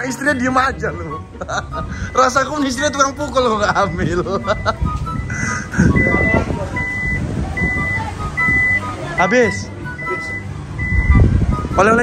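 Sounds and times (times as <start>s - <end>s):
high electronic warning beeps: 2.2s - 12.0s.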